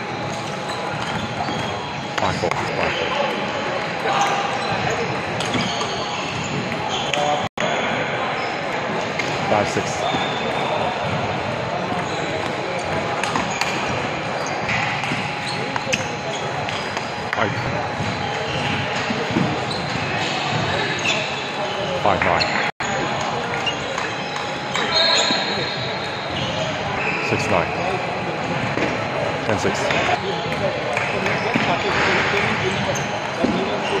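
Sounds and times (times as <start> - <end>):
background chatter: 0.0 - 34.0.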